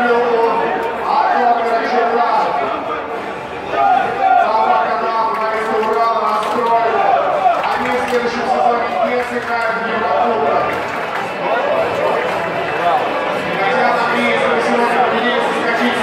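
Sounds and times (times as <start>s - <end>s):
man speaking on television: 0.0s - 3.0s, 4.2s - 10.8s, 12.8s - 16.0s.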